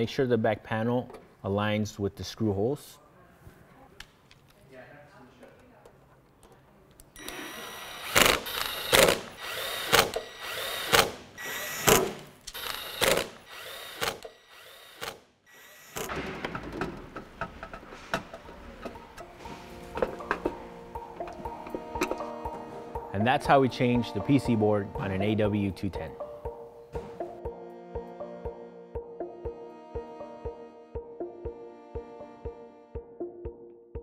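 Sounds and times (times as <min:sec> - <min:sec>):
cordless drill driving screws: 0:07.2 - 0:16.1
background music: 0:16.1 - 0:34.0.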